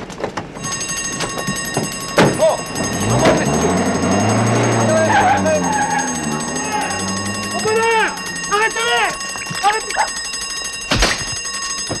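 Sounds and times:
electric alarm bell ringing: 0.5s - 12.0s.

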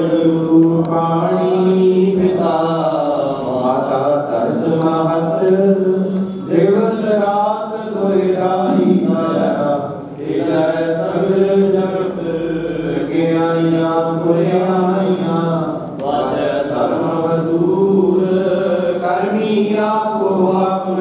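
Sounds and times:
slow chanted hymn singing: 0.0s - 21.0s
steady low drone: 8.3s - 11.2s.

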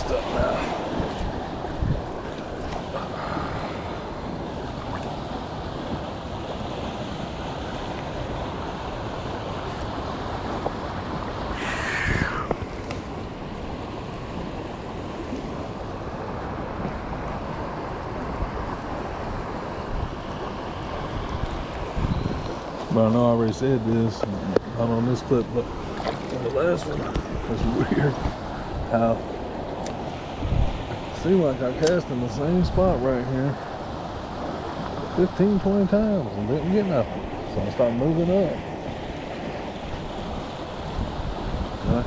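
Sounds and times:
creek water rushing: 0.0s - 42.0s.

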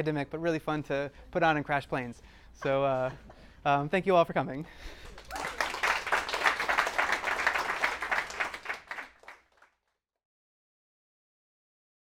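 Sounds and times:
audience applauding: 5.0s - 9.7s.

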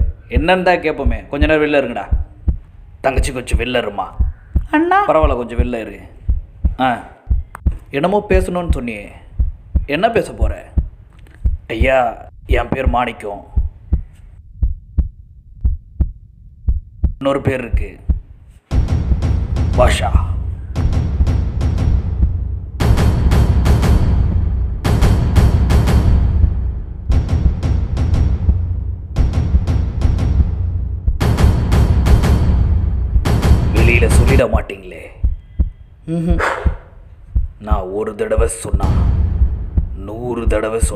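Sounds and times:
heartbeat thumps: 0.0s - 40.9s
low hum: 13.5s - 17.2s.

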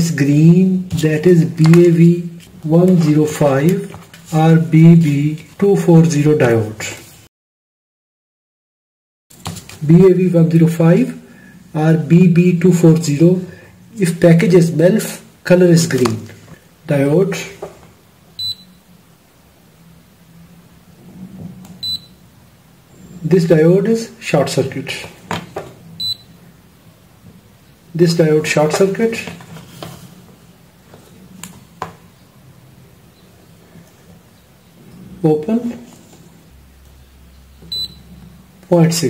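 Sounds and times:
multimeter high-pitched beeps: 18.4s - 18.8s, 21.8s - 22.2s, 26.0s - 26.4s, 37.6s - 38.1s.

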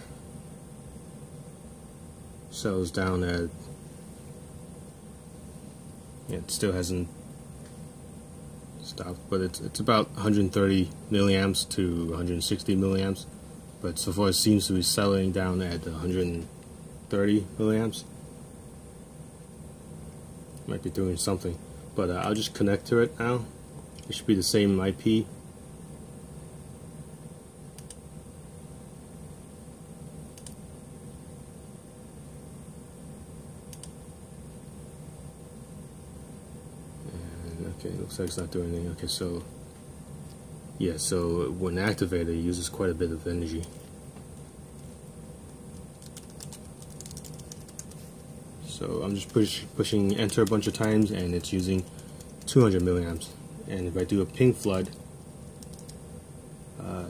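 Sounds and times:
low room hum: 0.0s - 57.0s
computer keyboard keystrokes: 30.4s - 30.6s, 45.8s - 48.0s, 55.6s - 56.0s.

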